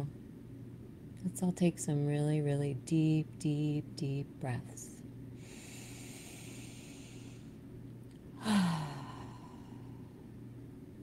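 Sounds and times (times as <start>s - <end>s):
woman breathing in: 5.4s - 7.6s, 8.4s - 10.2s
woman sighing: 8.4s - 10.1s.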